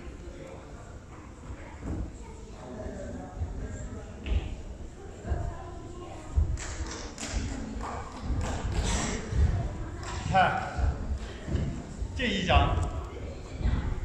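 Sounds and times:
man's voice: 12.2 - 12.8.

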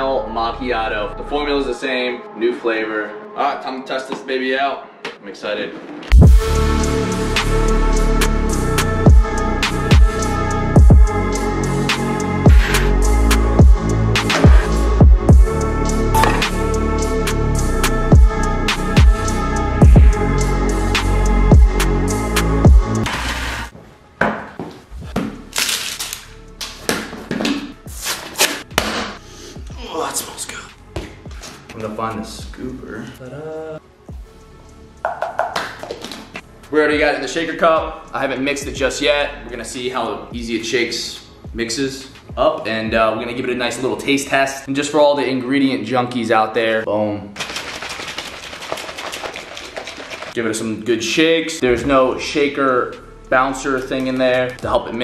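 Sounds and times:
electronic music: 6.1 - 23.7, 51.6 - 55.0
foil seal crinkling and tearing: 25.5 - 26.3.

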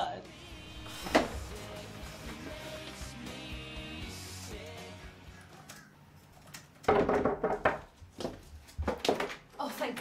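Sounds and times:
knocking on wooden door: 6.9 - 7.9.

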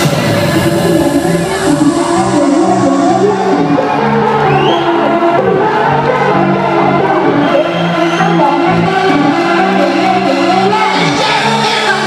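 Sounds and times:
crowd voices: 0.0 - 12.0
electronic dance music: 0.0 - 12.0.

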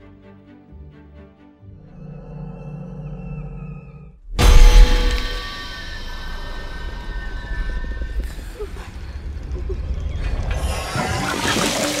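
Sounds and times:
low rumble: 1.8 - 11.0.

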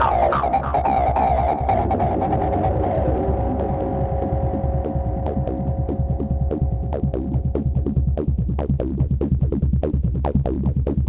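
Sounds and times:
held synth tone: 0.0 - 9.0
sharp ticking percussion: 0.0 - 10.1
throbbing synth bassline: 0.0 - 11.0.

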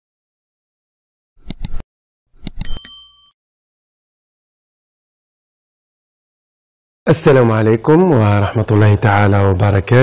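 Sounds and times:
mouse clicks: 1.4 - 1.8
notification bell ding: 2.6 - 3.4.

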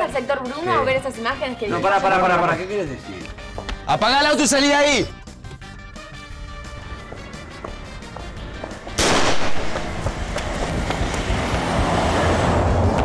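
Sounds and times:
background music: 0.0 - 13.0
car speeding past: 9.6 - 13.0.

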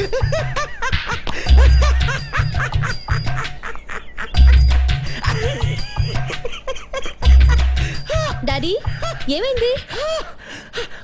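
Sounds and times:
comedic background music: 0.0 - 10.6.

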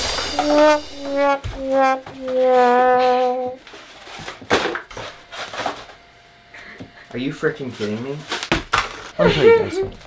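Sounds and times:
cardboard tubes clattering on floor: 8.2 - 9.2.

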